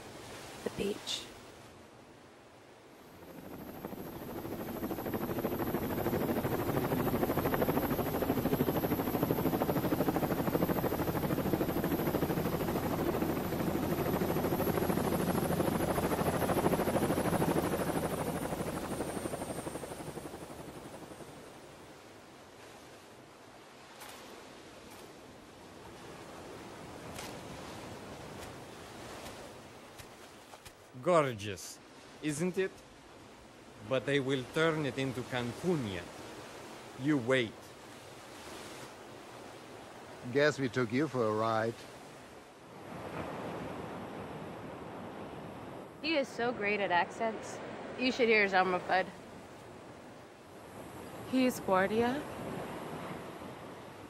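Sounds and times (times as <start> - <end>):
faint high whine: 2.9 - 22.1
helicopter rotor and engine: 2.9 - 22.3, 33.8 - 37.9, 39.8 - 54.0.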